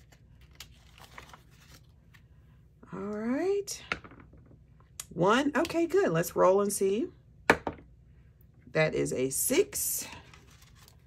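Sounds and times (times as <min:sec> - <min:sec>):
paper banknotes rustling: 0:00.0 - 0:02.2, 0:10.2 - 0:11.0.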